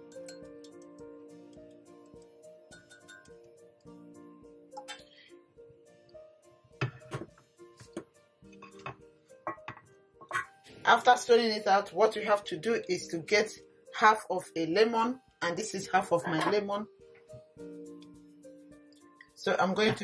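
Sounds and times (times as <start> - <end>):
spoon clinking in glass mug: 0.0 - 0.8, 2.7 - 3.4
soft background music: 0.0 - 20.0.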